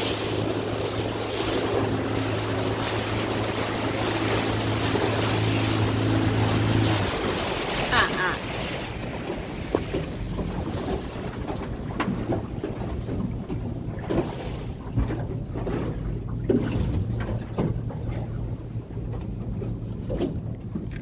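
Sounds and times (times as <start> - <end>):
boat motor hum: 0.0 - 21.0
hull slapping water: 0.0 - 21.0
wind on microphone: 0.0 - 21.0.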